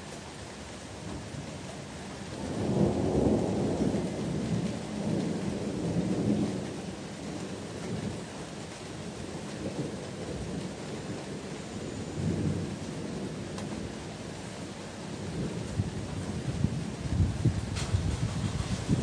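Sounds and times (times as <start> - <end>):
steady rain hissing: 0.0 - 19.0
rolling thunder: 2.4 - 8.2, 15.2 - 19.0.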